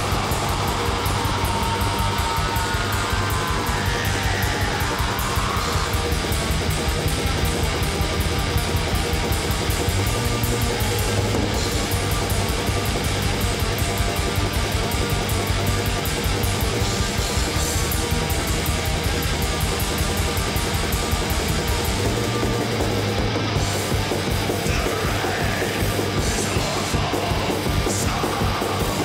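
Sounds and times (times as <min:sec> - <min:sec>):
distorted electric guitars: 0:00.0 - 0:29.0
fast drumming: 0:00.0 - 0:29.0.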